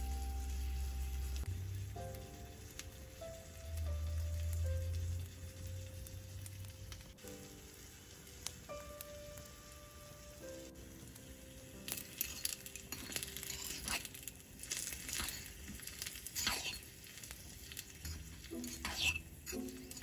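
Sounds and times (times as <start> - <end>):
onions sizzling in a pot: 0.0 - 20.0
soft background music: 0.0 - 20.0
metal spoon scraping a pot: 11.9 - 20.0.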